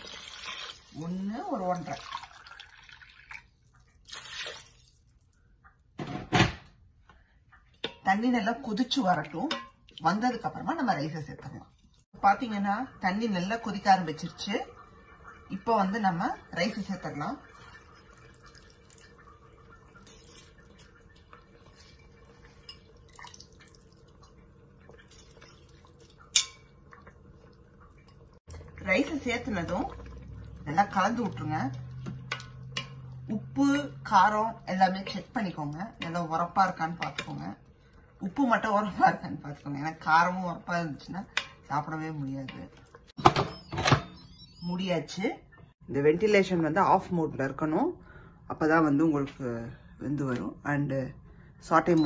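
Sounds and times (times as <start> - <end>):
water pouring and splashing into pot: 0.0 - 6.0, 7.2 - 43.2
drips and plops into liquid: 1.8 - 6.0, 8.9 - 10.6, 16.3 - 33.6.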